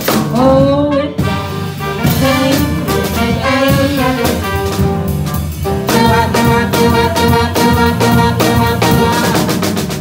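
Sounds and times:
drum kit: 0.0s - 10.0s
piano: 0.0s - 10.0s
horn section holding long notes: 1.0s - 4.9s.

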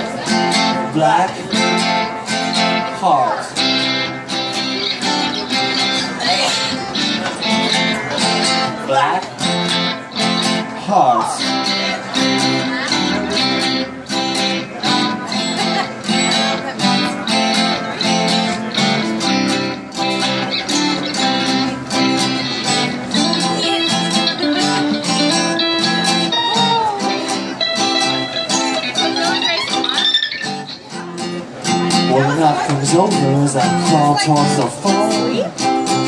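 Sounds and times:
acoustic band playing: 0.0s - 36.0s
guitars strummed: 0.0s - 36.0s.

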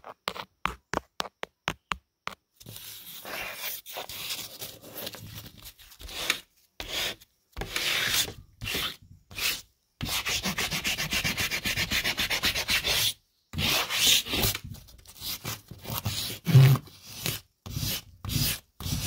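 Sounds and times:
chalk scribbling on drywall: 6.0s - 19.0s.

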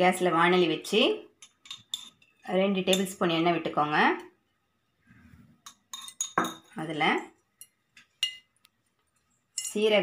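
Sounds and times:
woman speaking: 0.0s - 1.3s, 2.5s - 4.3s, 6.8s - 7.4s, 9.6s - 10.0s.

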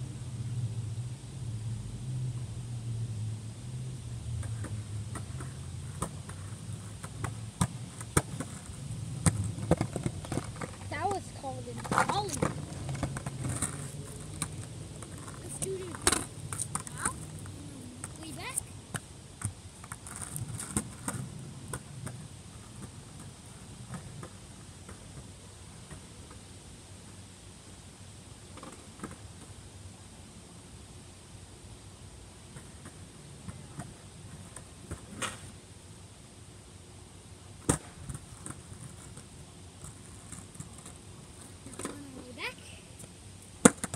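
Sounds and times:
skateboard wheels rumbling on pavement: 3.0s - 26.5s, 32.4s - 35.6s, 37.5s - 43.9s
skateboard deck clacking: 4.4s - 19.0s, 43.6s - 43.9s.

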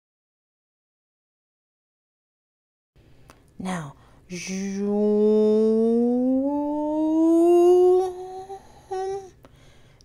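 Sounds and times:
person singing long note: 4.8s - 9.3s.

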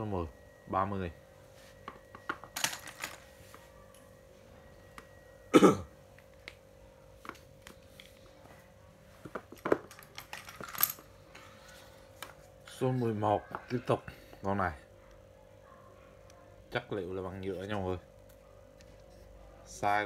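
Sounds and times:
faint hum: 0.0s - 20.0s.

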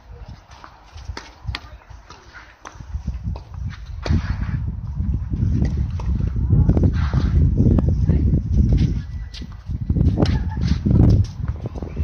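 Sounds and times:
tennis ball struck and bouncing: 0.5s - 4.2s.

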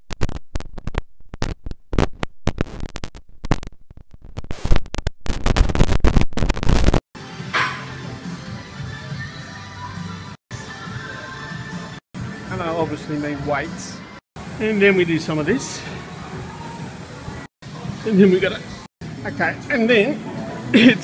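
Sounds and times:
music: 7.2s - 21.0s.

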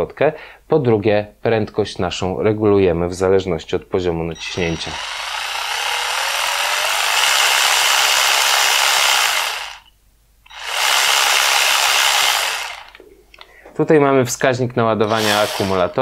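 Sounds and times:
cordless impact ratchet running: 4.4s - 9.9s, 10.5s - 13.0s, 15.0s - 16.0s.

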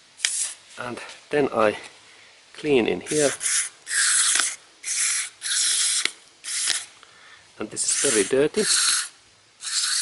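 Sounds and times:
aerosol spray hissing: 0.2s - 0.6s, 3.1s - 6.9s, 7.8s - 10.0s.

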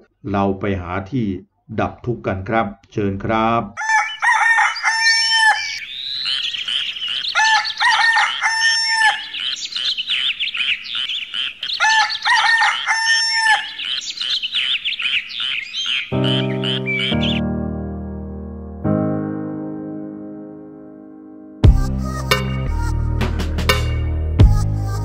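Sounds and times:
rooster crowing: 3.8s - 5.8s, 7.2s - 9.5s, 11.7s - 14.0s
small birds chirping: 3.8s - 17.4s
piano music: 16.1s - 25.0s.

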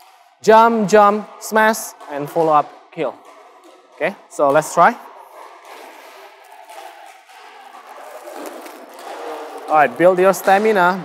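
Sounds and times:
steady room noise: 0.0s - 11.0s.

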